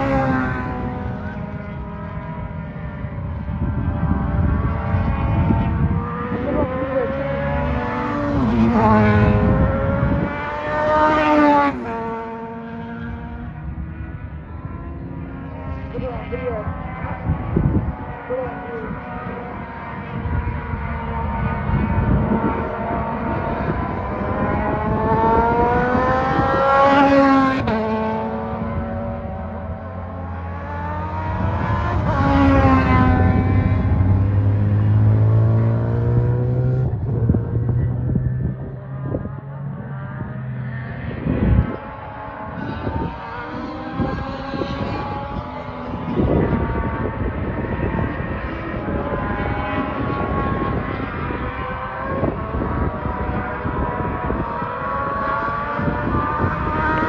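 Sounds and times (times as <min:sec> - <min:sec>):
race car engines at high revs: 0:00.0 - 0:57.0.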